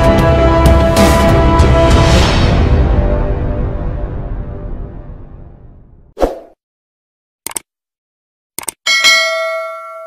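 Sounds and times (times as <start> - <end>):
notification bell ding: 8.9 - 10.0.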